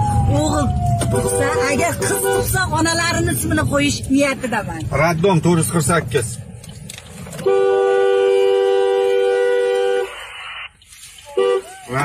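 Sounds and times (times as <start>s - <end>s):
two-note car horn honking: 7.4s - 10.2s.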